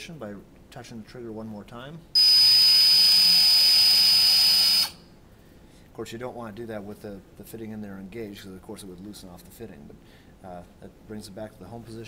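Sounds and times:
power tool motor whine: 2.2s - 5.0s.

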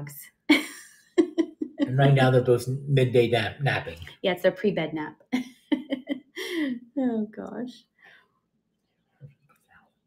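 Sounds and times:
faint voice murmur: 1.9s - 4.0s.

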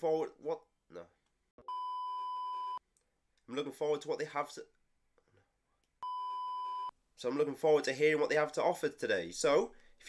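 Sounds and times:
censor bleep: 1.6s - 2.8s, 6.0s - 6.9s.

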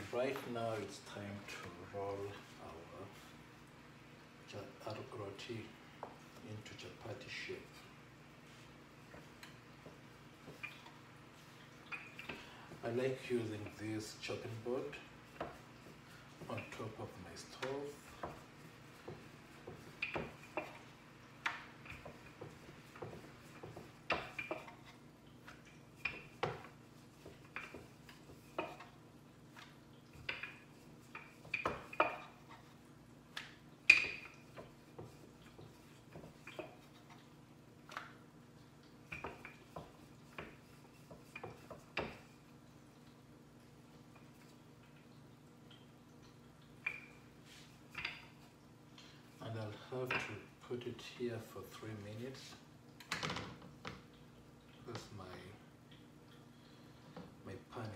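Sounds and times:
rolling pin on dough and board: 17.6s - 37.2s, 39.1s - 42.4s.

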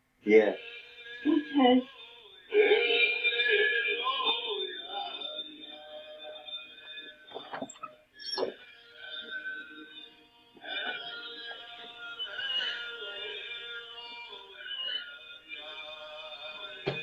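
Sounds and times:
droning electronic tones: 0.4s - 17.0s.

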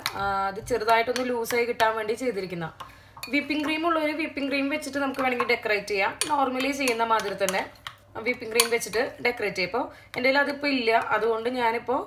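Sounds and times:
spoon stirring thick mixture: 0.0s - 11.5s.

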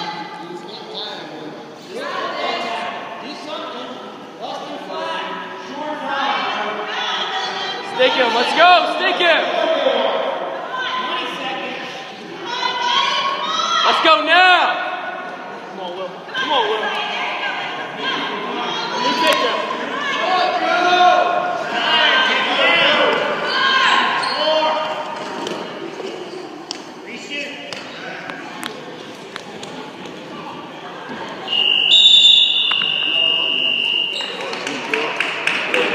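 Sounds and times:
people shouting: 16.3s - 24.8s.

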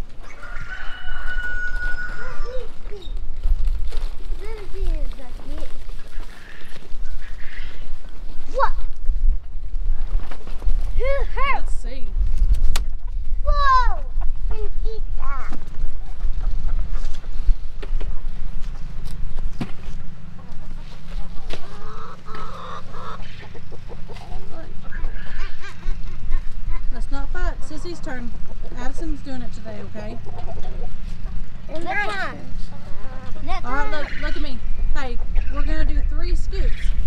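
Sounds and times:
chickens squawking and clucking: 0.0s - 11.6s, 12.8s - 13.4s, 14.0s - 37.0s.

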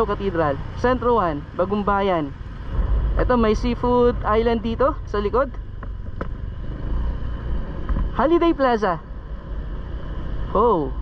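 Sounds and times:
motorcycle engine rumble: 0.0s - 11.0s.

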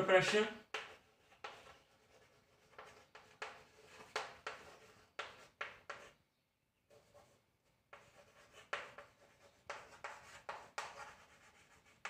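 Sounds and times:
chalk scratching on chalkboard: 0.2s - 6.2s, 6.9s - 12.0s.

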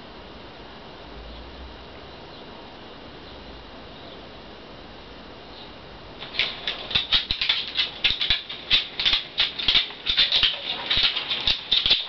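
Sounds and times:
harness rattling clicks: 6.2s - 12.0s.

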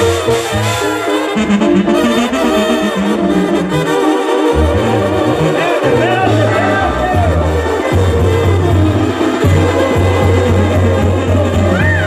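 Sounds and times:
trumpets and trombones melody: 0.0s - 12.0s
tuba bass line: 0.0s - 12.0s.

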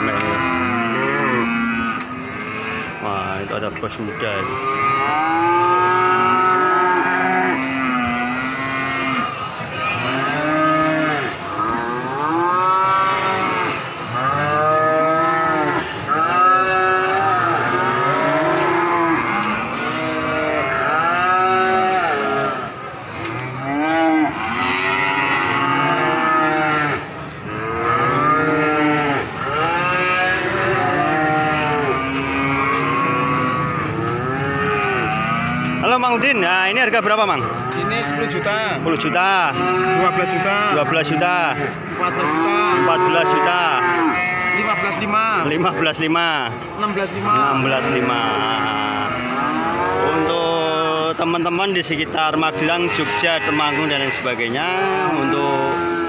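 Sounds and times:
cattle mooing: 0.0s - 56.0s.

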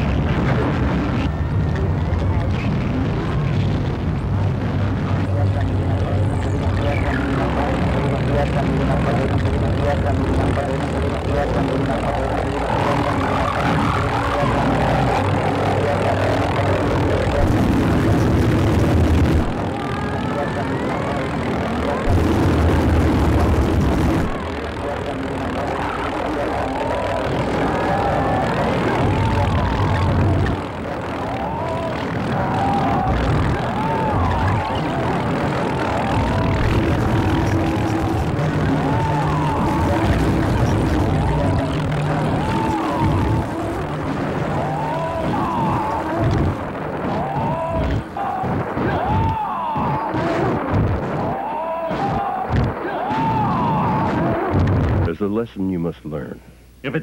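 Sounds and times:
wavering tones: 0.0s - 54.6s
garbled voices: 0.0s - 55.8s
steady low drone: 0.0s - 57.0s.

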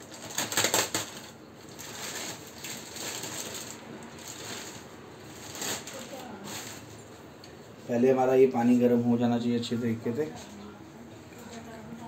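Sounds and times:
plastic bag crinkling: 0.0s - 7.2s.

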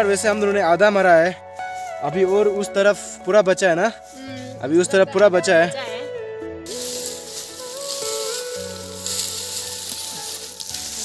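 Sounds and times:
soft background music: 0.0s - 11.0s
dry plant stalks crackling: 6.7s - 11.0s.

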